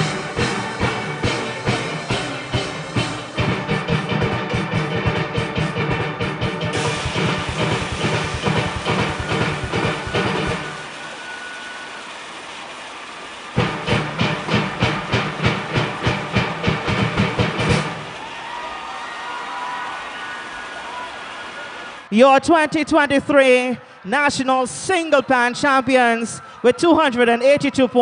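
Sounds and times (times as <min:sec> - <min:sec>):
steel pan band playing: 0:00.0 - 0:18.3
steady hiss: 0:06.8 - 0:18.2.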